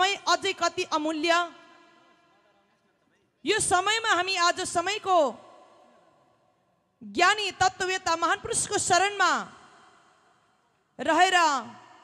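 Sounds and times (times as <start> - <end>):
woman speaking through microphone: 0.0 - 1.6, 3.4 - 5.4, 7.0 - 9.5, 11.0 - 11.8
voice echo: 0.0 - 12.0.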